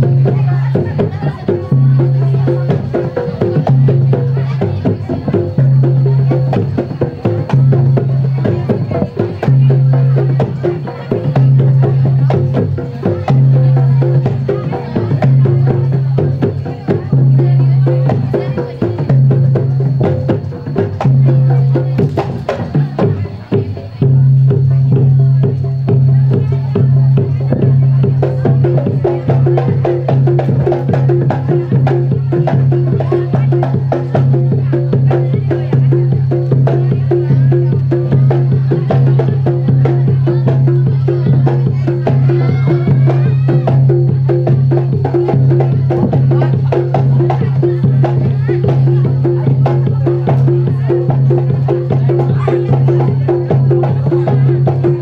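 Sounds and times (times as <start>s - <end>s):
hand drumming on barrel drums: 0.0s - 55.0s.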